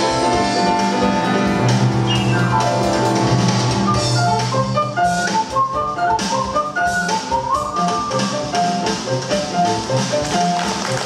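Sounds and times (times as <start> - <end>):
drum kit with cymbals: 0.0 - 11.0
grand piano playing quick runs: 0.2 - 11.0.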